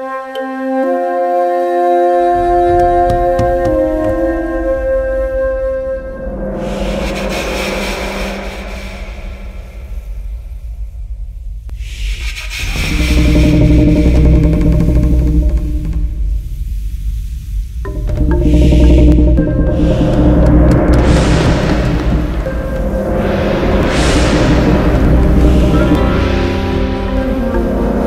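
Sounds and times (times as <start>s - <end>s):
ambient instrumental music: 0.0s - 11.0s, 17.6s - 28.0s
hiss: 6.5s - 14.2s, 14.9s - 27.6s
deep bass: 12.6s - 28.0s.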